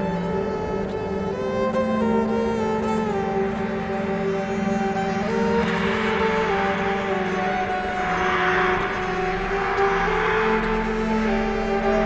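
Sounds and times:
held drone tones: 0.0s - 12.0s
rushing noisy wash: 0.1s - 12.0s.

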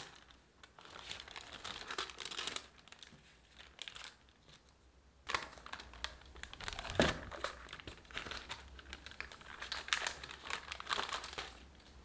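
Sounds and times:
parchment paper crinkling: 0.0s - 12.0s.

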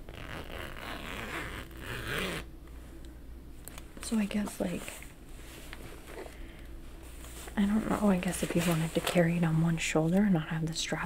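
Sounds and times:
backpack zipper rasping: 0.1s - 2.5s.

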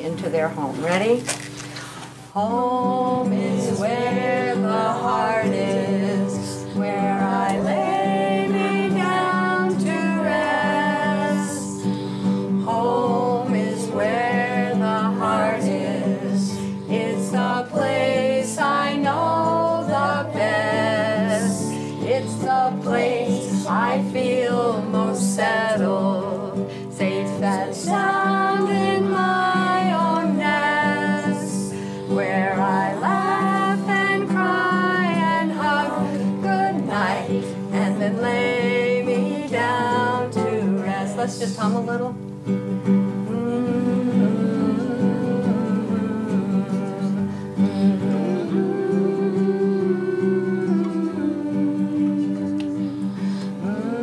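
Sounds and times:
strummed classical guitar: 0.0s - 54.0s
woman singing: 2.4s - 42.3s, 43.1s - 54.0s.

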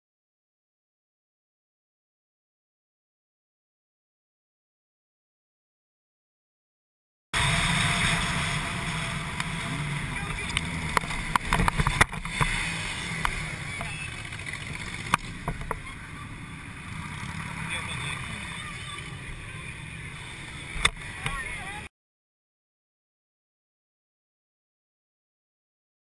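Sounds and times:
motorcycle engine and road noise: 7.4s - 21.9s.

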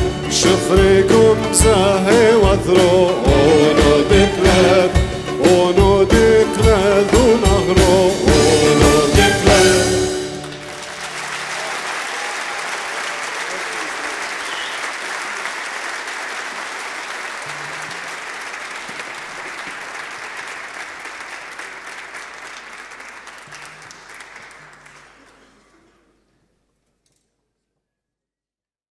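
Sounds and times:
audience applauding: 10.0s - 26.1s.

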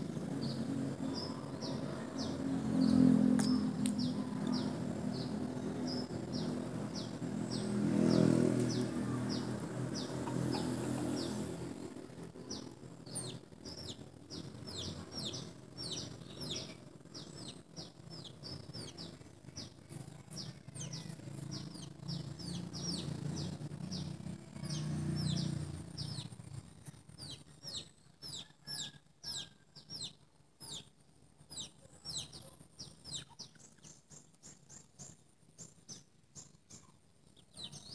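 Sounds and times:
small birds chirping: 0.0s - 37.9s.

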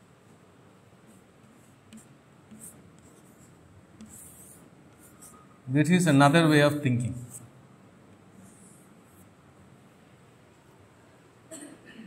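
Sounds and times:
chalk scratching on blackboard: 1.1s - 5.5s, 7.1s - 7.5s, 8.4s - 9.3s.

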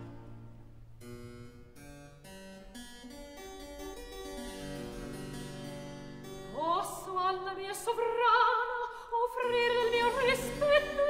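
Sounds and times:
harpsichord chords: 0.0s - 8.6s.

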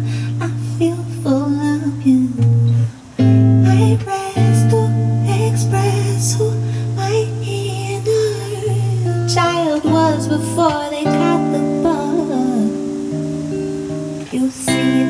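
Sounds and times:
electric guitar chords: 0.0s - 15.0s
person singing: 0.0s - 15.0s.

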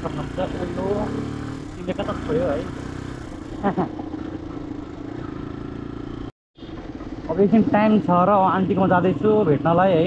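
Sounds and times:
motorcycle engine cruising: 0.0s - 10.0s
road and wind noise: 0.0s - 10.0s.

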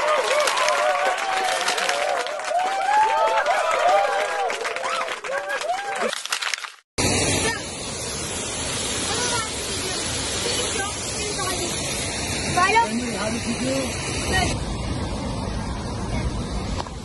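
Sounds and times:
waterfall rushing: 9.0s - 14.6s.

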